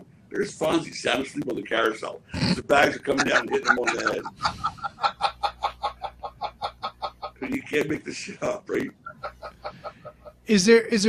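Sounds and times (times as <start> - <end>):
man laughing: 2.7 - 10.5.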